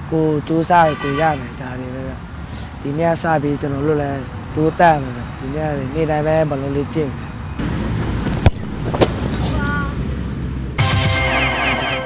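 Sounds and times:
outdoor background noise: 0:00.0 - 0:12.0
football struck hard: 0:08.4 - 0:09.3.

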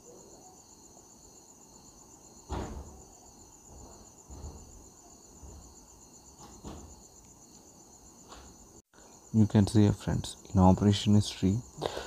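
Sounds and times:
insect chirring: 0:00.0 - 0:12.0.

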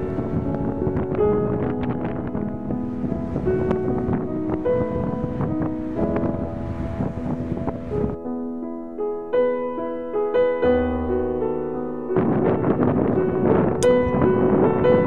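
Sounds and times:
wind buffeting microphone: 0:00.0 - 0:08.2, 0:08.8 - 0:15.0
piano music: 0:00.0 - 0:15.0.

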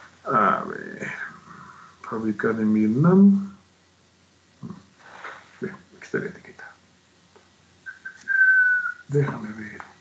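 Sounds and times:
person whistling: 0:07.9 - 0:09.1.

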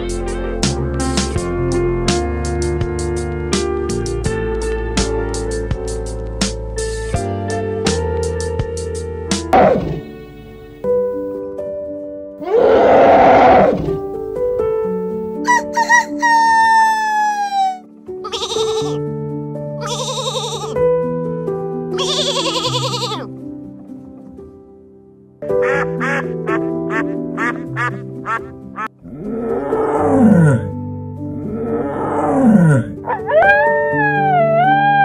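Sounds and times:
soft background music: 0:00.0 - 0:35.0
loud rough animal call: 0:09.6 - 0:10.1, 0:12.4 - 0:14.0
long falling animal call: 0:12.4 - 0:14.0, 0:15.5 - 0:19.0, 0:19.8 - 0:20.8, 0:22.0 - 0:23.3, 0:25.6 - 0:30.7, 0:31.4 - 0:35.0
sheep bleating: 0:18.2 - 0:19.0, 0:19.8 - 0:20.8, 0:22.0 - 0:23.3
duck quacking: 0:18.3 - 0:19.0, 0:19.8 - 0:20.8, 0:25.6 - 0:28.9.

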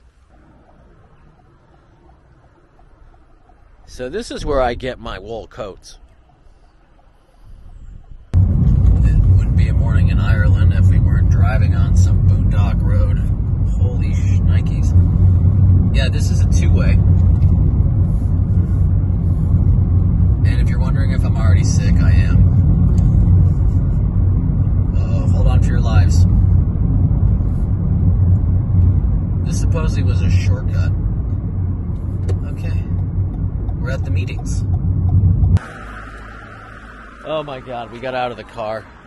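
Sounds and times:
car engine and tyres rumbling: 0:00.0 - 0:39.0.

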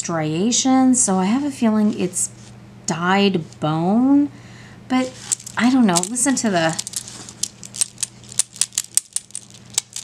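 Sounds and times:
beads clacking together: 0:05.2 - 0:10.0.

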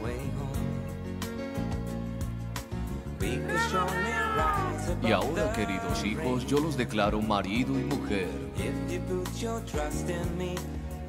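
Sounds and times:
soft pop ballad music: 0:00.0 - 0:11.0.

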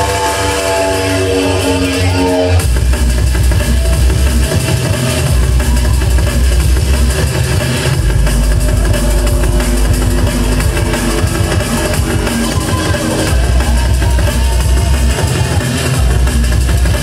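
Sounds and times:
heavy sub-bass line: 0:00.0 - 0:17.0
fast dense drum beat: 0:02.6 - 0:17.0.

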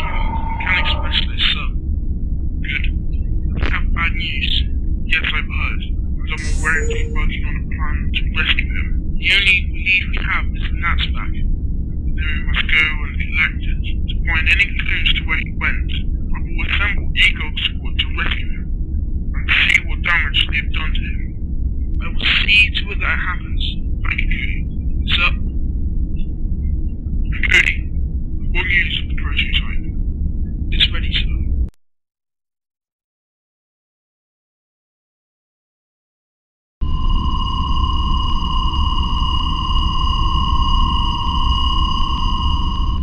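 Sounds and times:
tinny voice over radio: 0:00.0 - 0:01.7, 0:02.7 - 0:02.9, 0:03.6 - 0:11.4, 0:12.2 - 0:18.6, 0:19.4 - 0:21.2, 0:22.0 - 0:25.4, 0:27.4 - 0:27.8, 0:28.6 - 0:29.8, 0:30.8 - 0:31.4
low background hum: 0:00.0 - 0:31.7.

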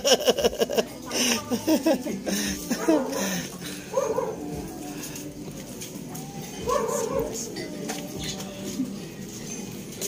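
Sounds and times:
dog barking: 0:03.9 - 0:04.5, 0:06.6 - 0:07.5.

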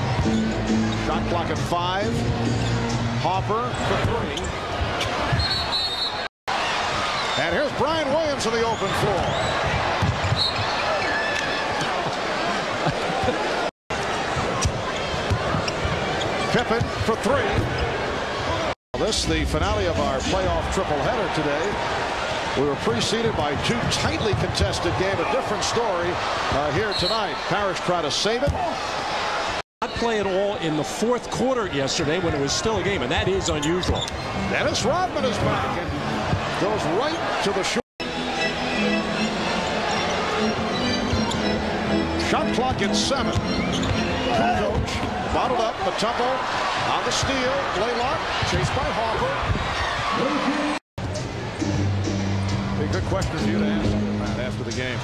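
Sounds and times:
arena crowd noise: 0:00.0 - 0:55.0
basketball game in play: 0:00.0 - 0:55.0.

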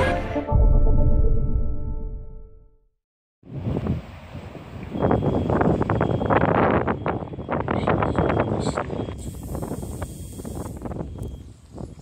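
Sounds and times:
outdoor street noise: 0:03.4 - 0:12.0
wind buffeting microphone: 0:03.4 - 0:12.0.

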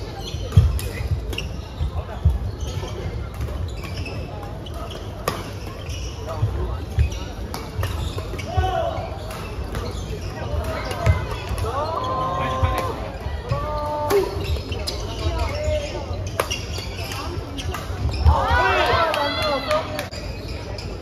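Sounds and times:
voices in large hall: 0:00.0 - 0:21.0.

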